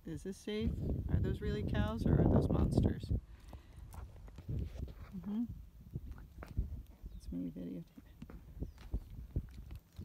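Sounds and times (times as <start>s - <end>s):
horse hooves shifting on gravel: 7.9s - 10.0s.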